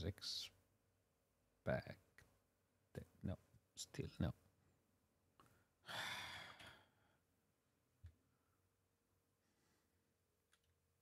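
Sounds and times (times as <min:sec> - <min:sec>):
man sighing: 0:05.9 - 0:06.9.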